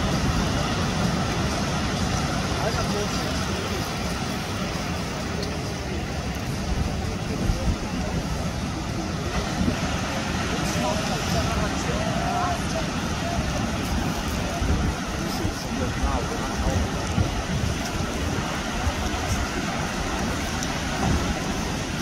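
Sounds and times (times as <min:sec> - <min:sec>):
faint distant voices: 0:00.0 - 0:22.0
ocean surf breaking: 0:00.0 - 0:22.0
wind buffeting microphone: 0:00.0 - 0:22.0.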